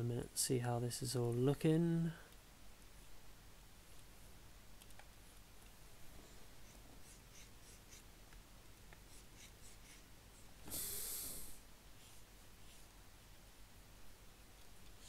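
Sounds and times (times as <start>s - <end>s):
stylus scratching on graphics tablet: 6.6s - 8.1s
breathy hiss: 9.1s - 12.9s.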